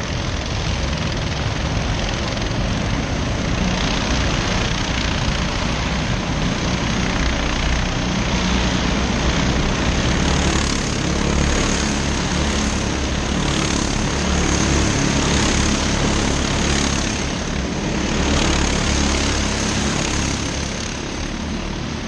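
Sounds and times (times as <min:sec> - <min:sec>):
go-kart engines buzzing: 0:00.0 - 0:22.0.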